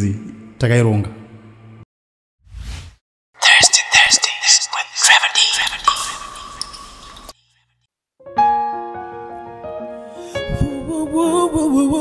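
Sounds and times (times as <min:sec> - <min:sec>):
whispered speech: 0:03.4 - 0:06.3.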